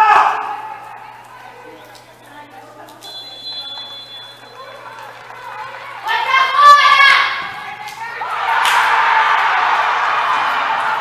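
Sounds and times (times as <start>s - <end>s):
faint crowd voices: 0.0s - 8.6s
referee's whistle blast: 3.1s - 4.8s.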